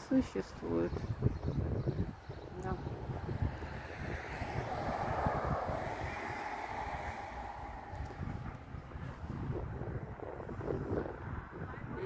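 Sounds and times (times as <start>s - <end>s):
wind buffeting microphone: 0.0s - 12.0s
car passing: 2.2s - 10.5s.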